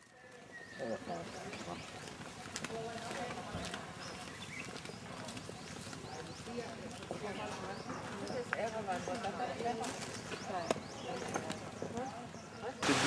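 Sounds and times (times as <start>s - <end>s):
distant people talking: 0.0s - 13.0s.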